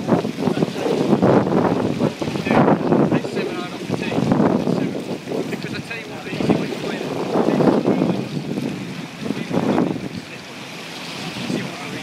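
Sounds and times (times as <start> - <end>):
sea water rushing along hull: 0.0 - 12.0
wind buffeting microphone: 0.0 - 12.0.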